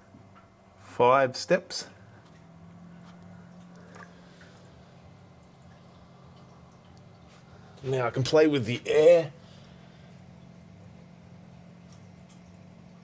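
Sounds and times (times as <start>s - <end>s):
skimmer pump humming: 0.0s - 13.0s
water trickling: 2.2s - 13.0s.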